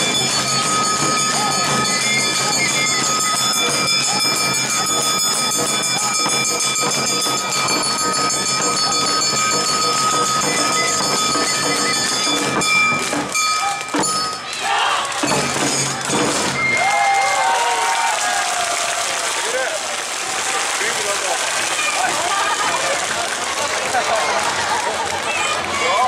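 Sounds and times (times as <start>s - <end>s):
held high note: 0.0s - 17.0s
drums and gongs beat: 0.0s - 17.8s.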